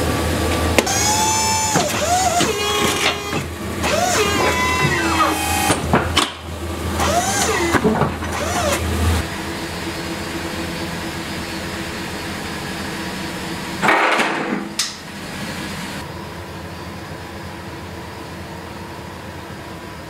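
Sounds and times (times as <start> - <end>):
truck engine idling: 0.0 - 13.8.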